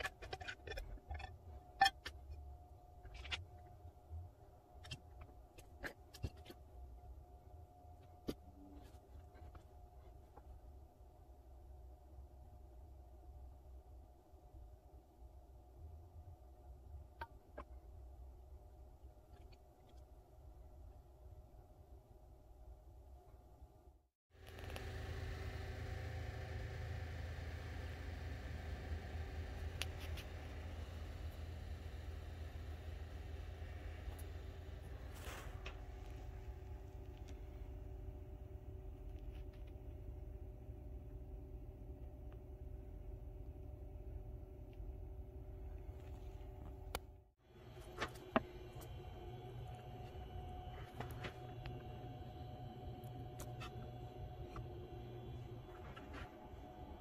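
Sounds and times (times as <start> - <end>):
low machine hum with tones: 0.0 - 57.0.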